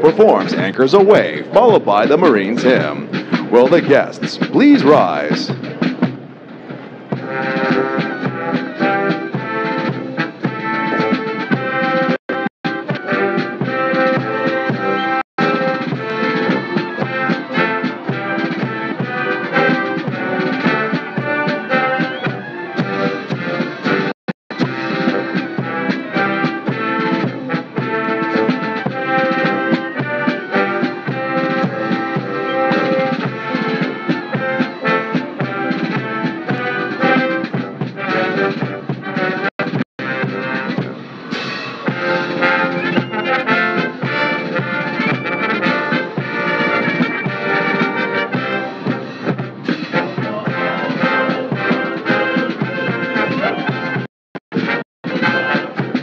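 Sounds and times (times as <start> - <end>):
brass band playing a march: 0.0 - 6.2, 7.1 - 56.0.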